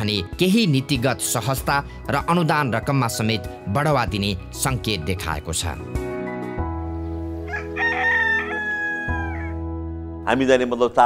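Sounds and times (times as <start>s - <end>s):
background music held chord: 0.0s - 11.0s
rooster crowing: 7.4s - 9.6s.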